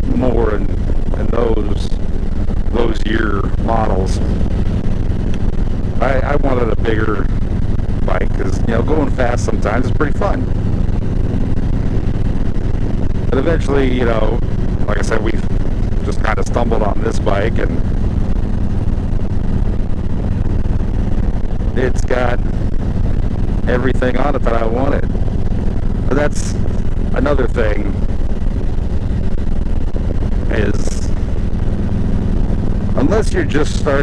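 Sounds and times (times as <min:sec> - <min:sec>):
motorcycle engine rumbling: 0:00.0 - 0:34.0.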